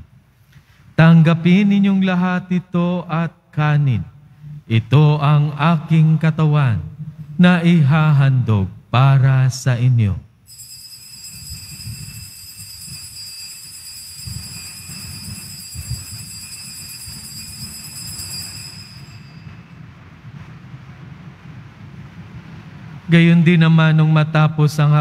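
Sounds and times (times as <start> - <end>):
low room rumble: 0.0 - 10.5, 14.4 - 25.0
altar bell ringing: 10.4 - 20.1.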